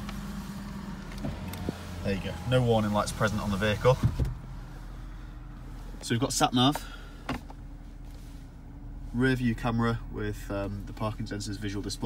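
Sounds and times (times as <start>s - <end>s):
car engine idling inside cabin: 0.0s - 12.0s.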